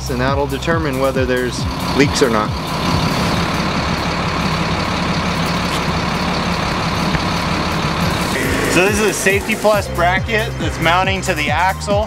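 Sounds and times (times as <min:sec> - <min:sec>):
large engine running: 0:00.0 - 0:12.0.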